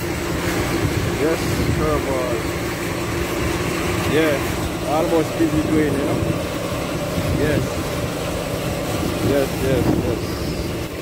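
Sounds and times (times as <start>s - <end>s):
construction machine engine droning: 0.0s - 11.0s.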